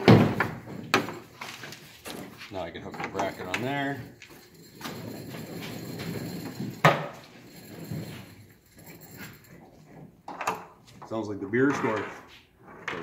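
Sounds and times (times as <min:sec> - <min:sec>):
metal roller conveyor rattling: 0:00.0 - 0:09.6.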